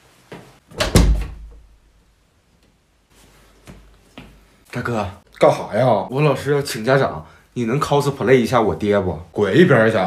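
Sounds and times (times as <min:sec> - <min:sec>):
wooden door slamming: 0:00.7 - 0:01.7.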